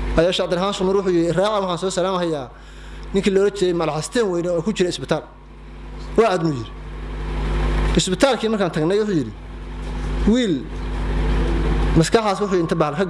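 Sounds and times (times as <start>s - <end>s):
low rumble and hum: 0.0s - 13.0s
man speaking into a microphone: 0.2s - 5.4s, 6.1s - 6.8s, 8.0s - 9.4s, 10.2s - 10.7s, 12.0s - 13.0s.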